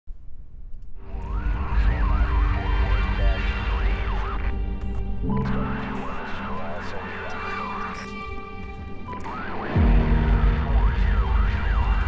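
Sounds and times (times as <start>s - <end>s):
deep rumble: 1.0s - 7.0s, 9.8s - 12.0s.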